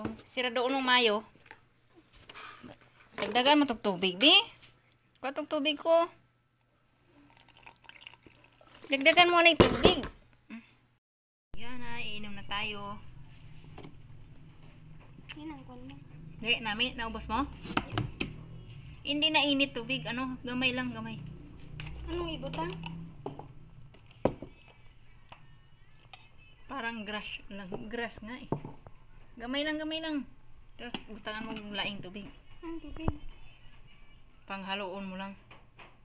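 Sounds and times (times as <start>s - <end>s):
water poured into a ceramic cup: 6.5s - 9.1s
cup knocking on hard surface: 28.5s - 28.9s.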